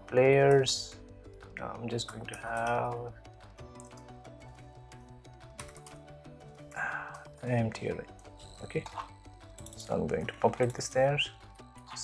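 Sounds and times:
quiet background music: 0:00.0 - 0:12.0
keyboard typing: 0:00.5 - 0:06.1, 0:06.9 - 0:11.0.

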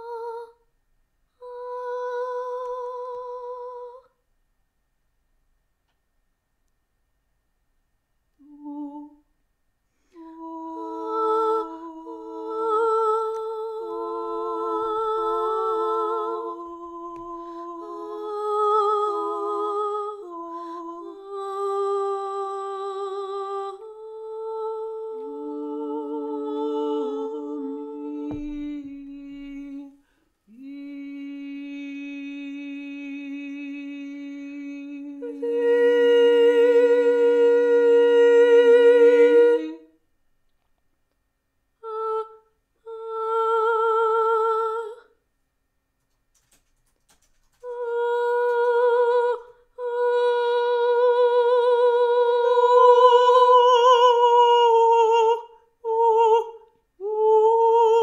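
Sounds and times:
voices holding long notes: 0:10.2 - 0:29.9.

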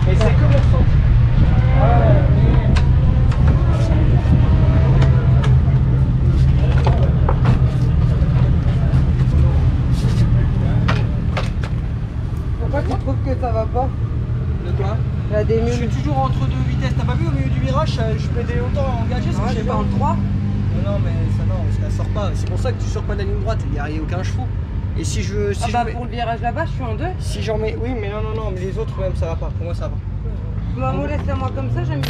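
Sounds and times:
low engine drone: 0:00.0 - 0:28.2
voices: 0:00.0 - 0:32.0.

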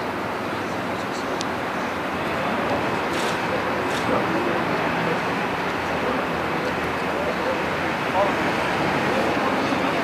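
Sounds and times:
faint distant voices: 0:00.0 - 0:10.0
outdoor background noise: 0:00.0 - 0:10.0.

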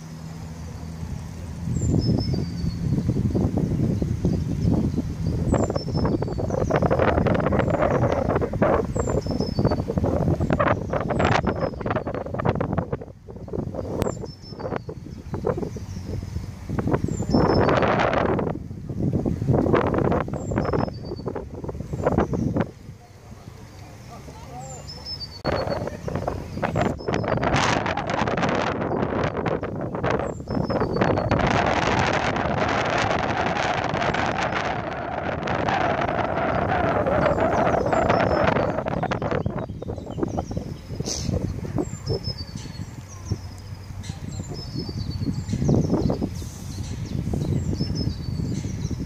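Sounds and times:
small birds chirping: 0:00.0 - 0:19.2, 0:20.0 - 0:49.0
wind buffeting microphone: 0:00.0 - 0:49.0.

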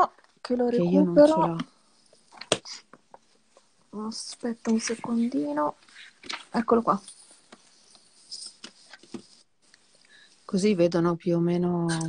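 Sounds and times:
paper sheet rustling: 0:04.6 - 0:09.4.

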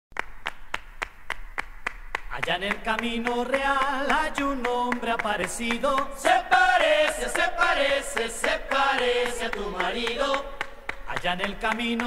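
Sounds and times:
rhythmic handclaps: 0:00.1 - 0:12.0.

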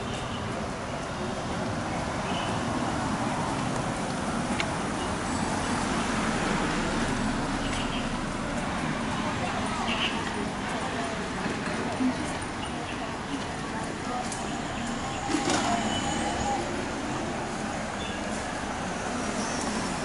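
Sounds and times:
road traffic: 0:00.0 - 0:20.0
indistinct voices: 0:06.1 - 0:20.0.

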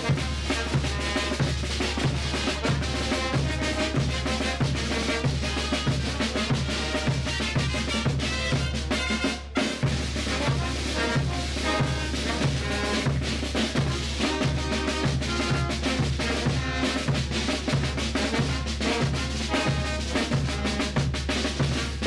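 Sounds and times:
bass drum and snare drums: 0:00.0 - 0:22.0
trumpets and tubas: 0:00.0 - 0:22.0.

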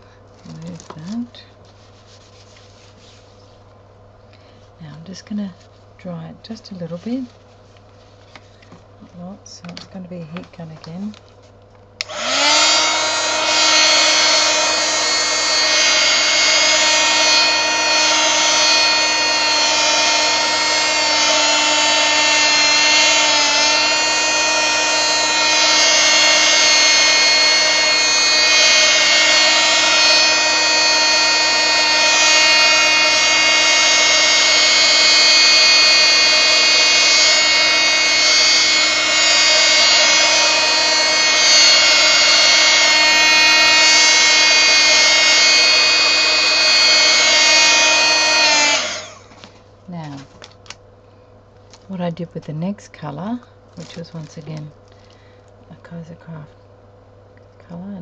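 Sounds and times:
heat gun fan whine: 0:00.0 - 0:01.7, 0:03.4 - 0:58.0.

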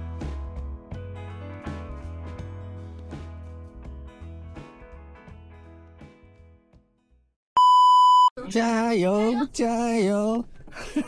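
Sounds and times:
background music: 0:00.0 - 0:06.6
high-pitched test-tone beep: 0:07.6 - 0:08.3.

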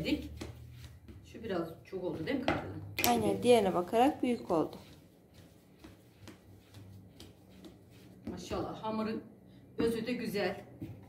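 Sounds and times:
hands tapping bread dough: 0:00.2 - 0:01.6, 0:04.6 - 0:08.6.

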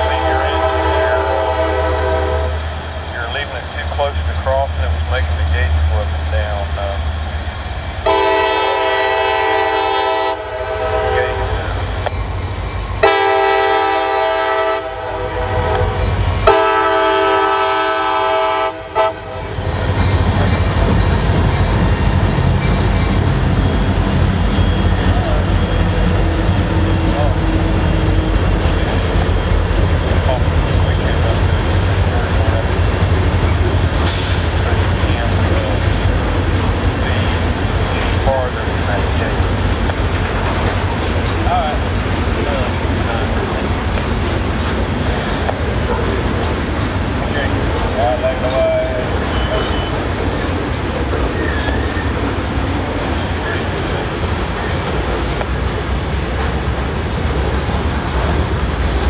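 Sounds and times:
locomotive air horn blasts: 0:00.0 - 0:02.7, 0:08.0 - 0:11.7, 0:13.0 - 0:19.5
freight train rumbling past: 0:00.0 - 0:59.0.

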